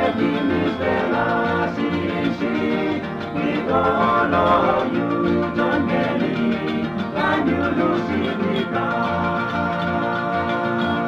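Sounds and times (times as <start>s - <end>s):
plucked acoustic guitars: 0.0s - 11.0s
pulsing bass: 0.0s - 11.0s.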